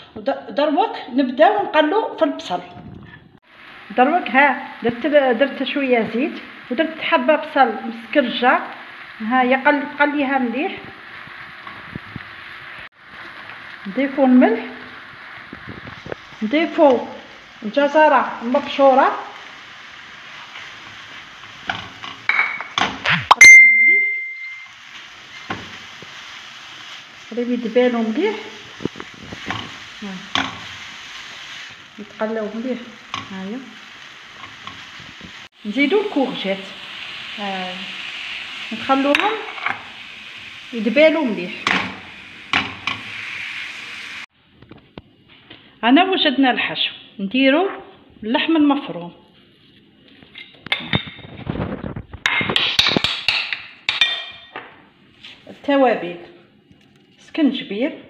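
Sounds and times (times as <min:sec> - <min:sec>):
vegetables sizzling in a pan: 0:03.4 - 0:23.2, 0:24.4 - 0:44.3
ringing clink: 0:23.4 - 0:24.7.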